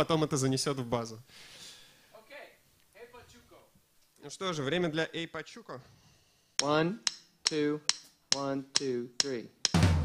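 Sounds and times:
man counting: 0:06.6 - 0:09.7.

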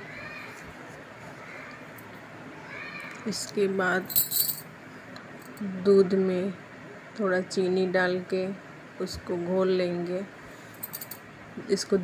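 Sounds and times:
faint drawn-out cries: 0:00.0 - 0:03.3.

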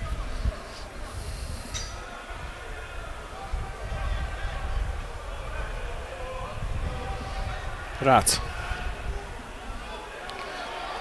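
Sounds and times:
distant voices and shouts: 0:00.0 - 0:11.0
low stadium rumble: 0:00.0 - 0:11.0.

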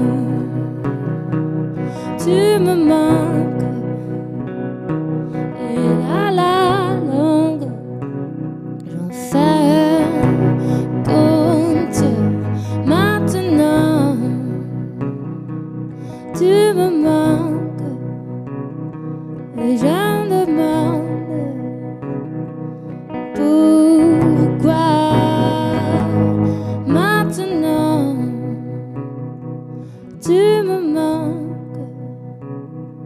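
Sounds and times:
electric guitar: 0:00.0 - 0:33.0
woman singing gently: 0:02.2 - 0:03.8, 0:08.8 - 0:10.2, 0:11.0 - 0:14.7, 0:16.4 - 0:18.1, 0:23.4 - 0:28.6, 0:30.2 - 0:31.9.

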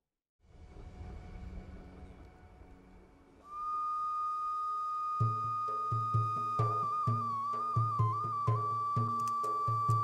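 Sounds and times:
wind instrument long high note: 0:03.4 - 0:10.0.

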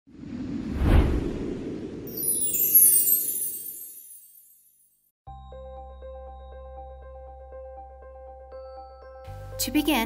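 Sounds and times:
whoosh: 0:00.1 - 0:03.8.

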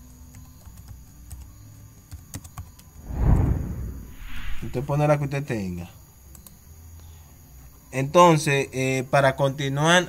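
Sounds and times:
faint low hum: 0:02.9 - 0:07.9
short rush of low noise: 0:03.0 - 0:05.2.

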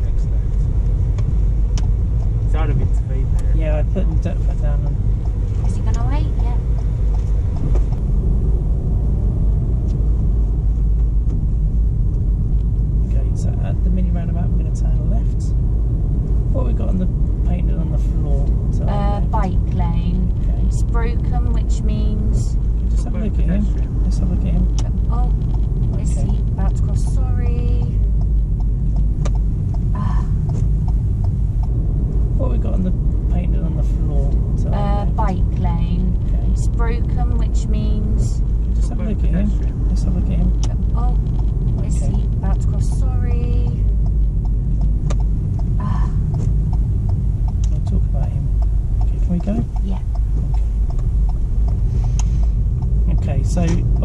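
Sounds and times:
car cabin road and engine rumble: 0:00.0 - 0:54.0
indistinct voices talking: 0:16.6 - 0:28.0, 0:30.0 - 0:30.6, 0:32.4 - 0:43.8, 0:45.8 - 0:46.4.

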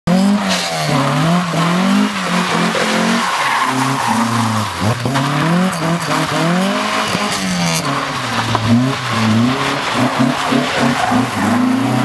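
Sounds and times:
car engine revving: 0:00.1 - 0:12.0
tyres squealing: 0:00.6 - 0:12.0.

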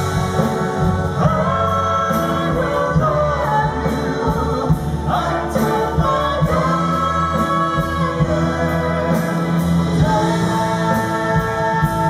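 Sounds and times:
man and woman singing duet: 0:00.0 - 0:12.0
symphony orchestra: 0:00.0 - 0:12.0.

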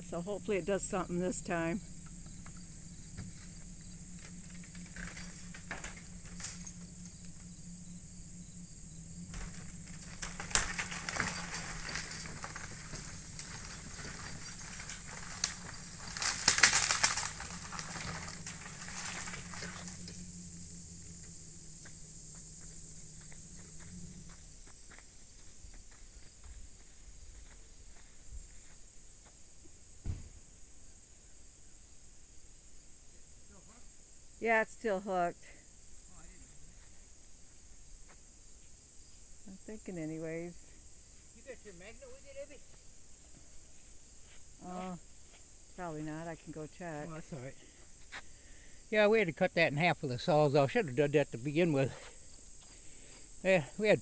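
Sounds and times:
vehicle engine running: 0:00.0 - 0:25.6
crickets chirping: 0:00.0 - 0:54.0
crackling and rustling: 0:01.2 - 0:25.0.

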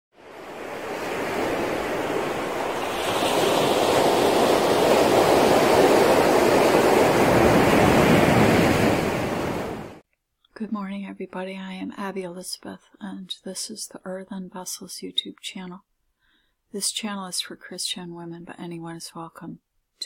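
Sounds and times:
ocean surf washing onto beach: 0:00.2 - 0:10.0.

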